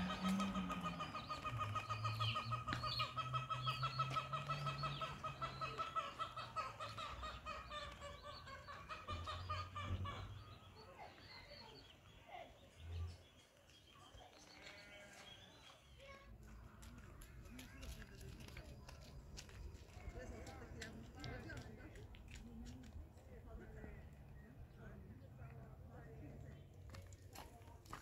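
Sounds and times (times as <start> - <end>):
birds calling in fast trill: 0.0 - 10.8.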